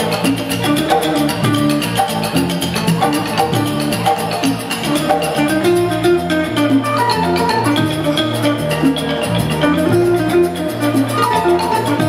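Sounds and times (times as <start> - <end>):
electric bass: 0.0 - 12.0
electric guitar: 0.0 - 12.0
hand drums: 0.0 - 12.0
struck keyed percussion: 0.0 - 12.0
bamboo flute: 4.9 - 12.0.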